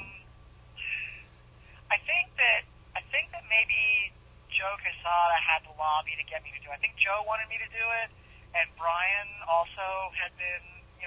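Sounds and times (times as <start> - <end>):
speech through a telephone line: 1.9 - 11.0.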